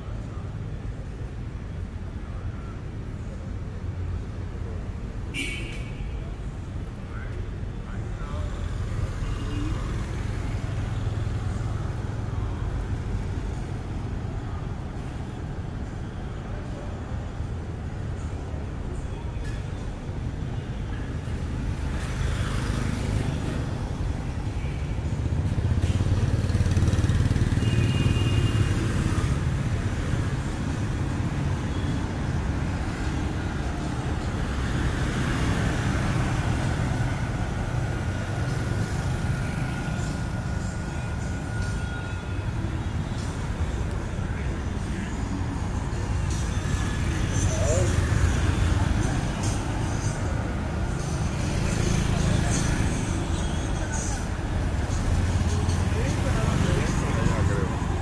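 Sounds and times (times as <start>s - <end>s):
cars passing: 21.2s - 58.0s
motor scooters passing: 25.1s - 29.9s, 46.0s - 58.0s
people's voices: 43.3s - 58.0s.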